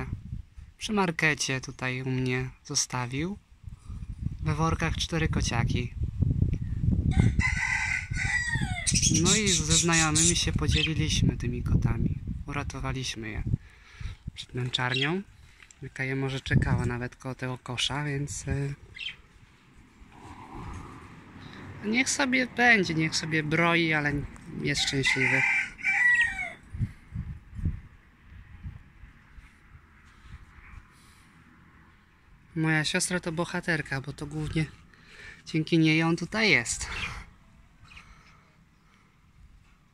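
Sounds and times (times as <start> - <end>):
rooster crowing: 7.1 - 9.0, 24.8 - 26.7.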